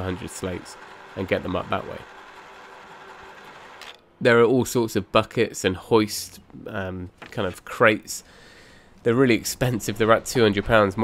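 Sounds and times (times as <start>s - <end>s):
electric hoist motor running: 0.0s - 4.0s.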